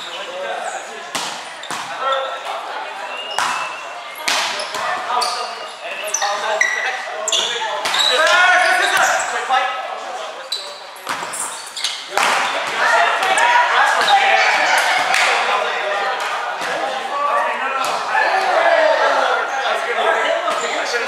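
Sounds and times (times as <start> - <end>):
players shouting in a gym: 0.0 - 9.8, 11.6 - 21.0.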